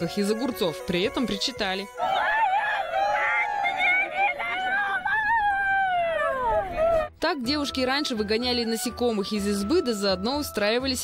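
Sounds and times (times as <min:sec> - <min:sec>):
woman wailing lament: 0:01.8 - 0:07.1.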